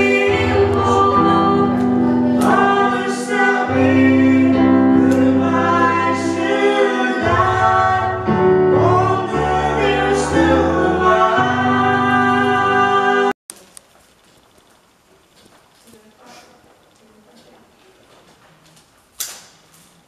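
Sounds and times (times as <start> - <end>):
low accompaniment: 0.0 - 13.3
choir singing held chords: 0.0 - 13.4.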